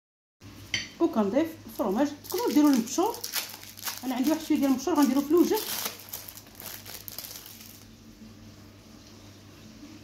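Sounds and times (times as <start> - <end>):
low steady hum: 0.4 - 10.0
hands crinkling and rustling: 1.7 - 7.9.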